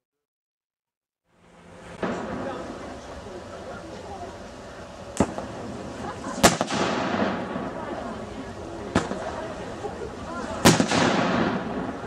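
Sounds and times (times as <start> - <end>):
long rolling echo: 1.4 - 12.0
cannon shots: 5.2 - 5.5, 6.4 - 7.8, 8.9 - 9.3, 10.6 - 12.0.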